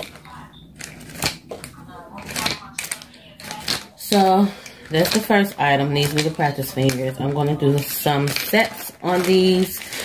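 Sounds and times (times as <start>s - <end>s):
plastic pieces clicking: 0.0s - 10.0s.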